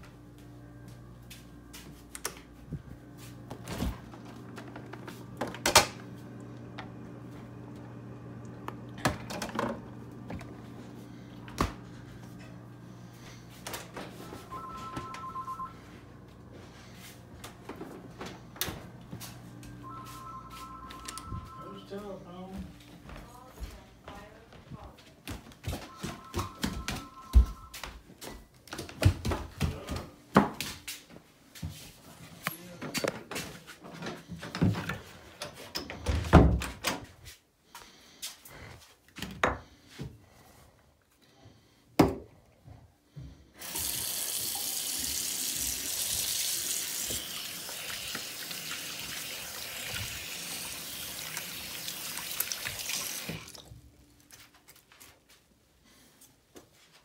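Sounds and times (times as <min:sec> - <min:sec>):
footsteps on floor: 0:00.0 - 0:05.2, 0:22.6 - 0:32.5
faucet water running into sink: 0:43.6 - 0:53.7.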